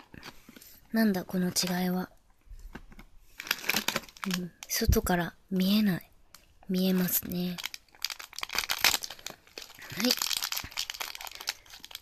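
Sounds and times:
plastic wrapper crinkling: 0:00.0 - 0:02.0, 0:02.6 - 0:05.2, 0:06.3 - 0:12.0.

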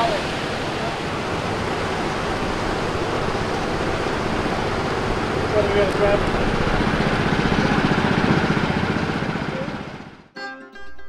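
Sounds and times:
water spilling over a dam: 0:00.0 - 0:08.4.

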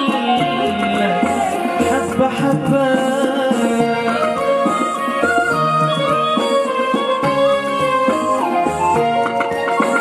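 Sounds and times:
man singing through a pa: 0:00.0 - 0:04.7
live band playing: 0:00.0 - 0:10.0.

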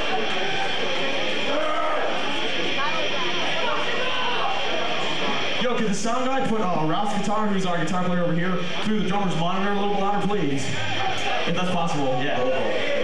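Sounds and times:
people talking indistinctly: 0:00.0 - 0:13.0
recording hiss and room noise: 0:00.0 - 0:13.0.

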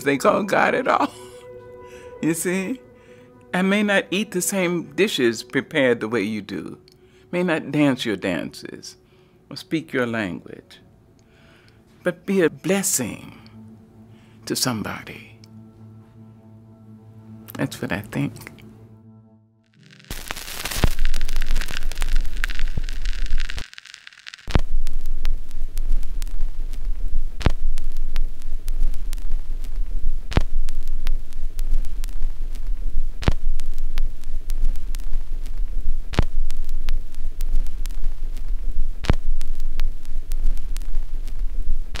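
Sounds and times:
deep rumble with crackle: 0:19.7 - 0:42.0.

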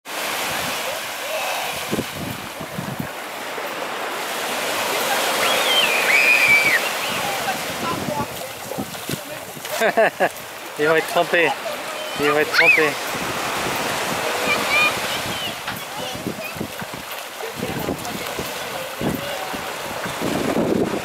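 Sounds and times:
waves breaking on beach: 0:00.0 - 0:21.0
high gliding call: 0:05.2 - 0:07.4.

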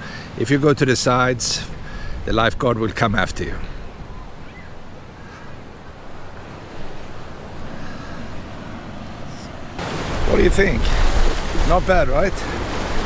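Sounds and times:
ocean waves breaking on beach: 0:00.0 - 0:13.0.

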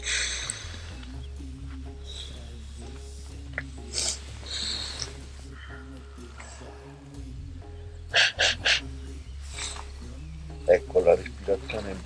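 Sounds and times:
man blowing his nose: 0:00.0 - 0:01.0, 0:03.8 - 0:05.3, 0:08.1 - 0:08.9.

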